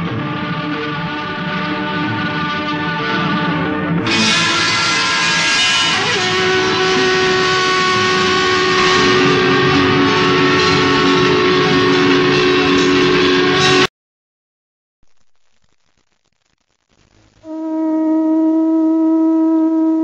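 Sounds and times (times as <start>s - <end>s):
sustained horn-like tones: 0.0s - 13.9s, 17.4s - 20.0s.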